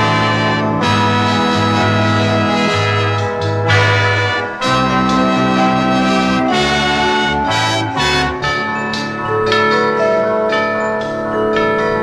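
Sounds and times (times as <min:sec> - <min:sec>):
orchestral film music: 0:00.0 - 0:09.3
ringing bell-like notes: 0:00.0 - 0:12.0.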